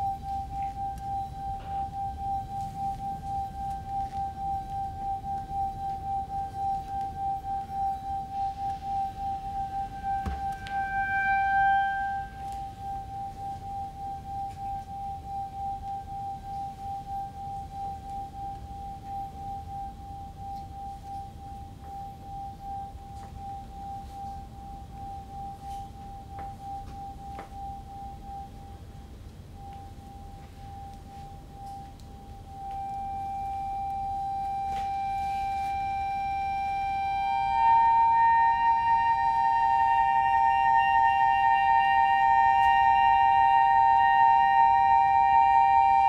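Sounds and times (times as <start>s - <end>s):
pulsing high tone: 0.0s - 46.0s
steady tone with overtones: 0.0s - 46.0s.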